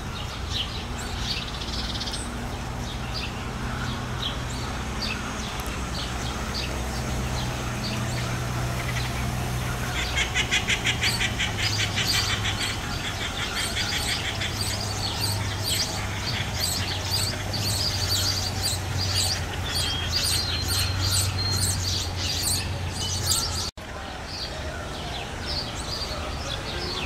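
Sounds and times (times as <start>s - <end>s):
small birds chirping: 0.0s - 27.0s.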